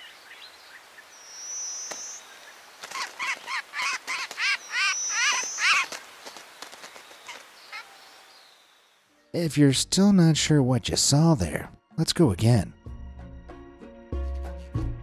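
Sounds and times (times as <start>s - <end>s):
bird chirping notes: 0.0s - 5.9s.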